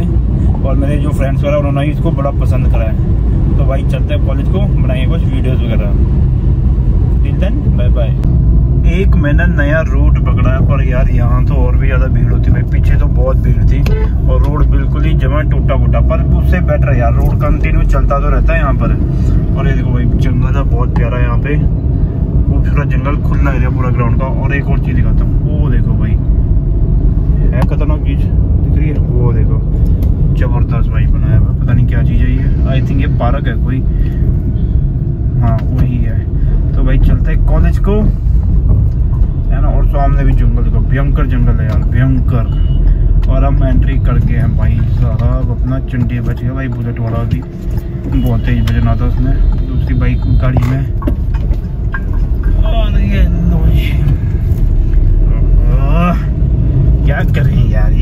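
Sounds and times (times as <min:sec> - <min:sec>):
road and engine rumble in car: 0:00.0 - 0:58.0.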